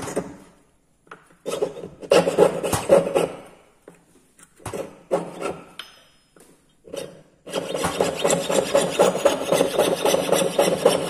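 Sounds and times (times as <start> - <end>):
piercing saw rasping through metal: 6.9 - 11.0.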